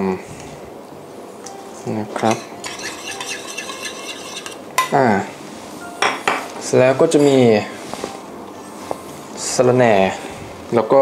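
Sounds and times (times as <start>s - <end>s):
metal spoon scraping a dish: 2.6s - 4.6s.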